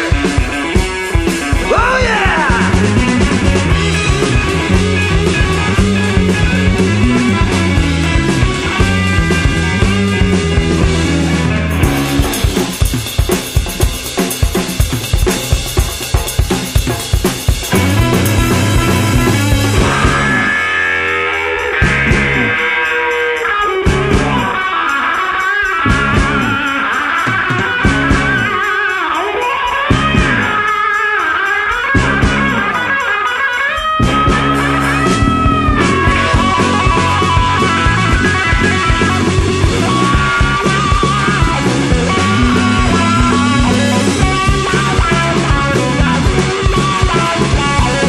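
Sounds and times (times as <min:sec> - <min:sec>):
drum kit break: 0:00.0 - 0:22.7, 0:34.0 - 0:48.0
bass and electric guitar: 0:00.0 - 0:48.0
blues-rock band playing: 0:00.0 - 0:48.0.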